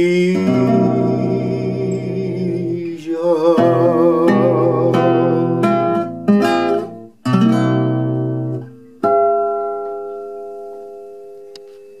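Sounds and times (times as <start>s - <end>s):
classical guitar chord ringing: 0.0s - 12.0s.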